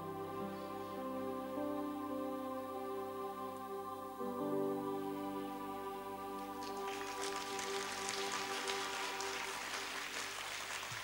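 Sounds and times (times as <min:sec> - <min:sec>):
audience applause: 0:06.4 - 0:11.0.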